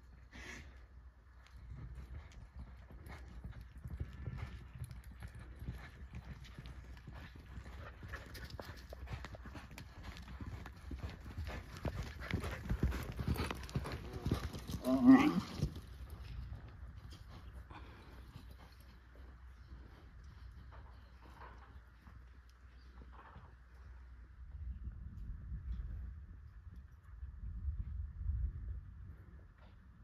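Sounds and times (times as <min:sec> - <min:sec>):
horse hoofbeats: 0:01.5 - 0:23.8.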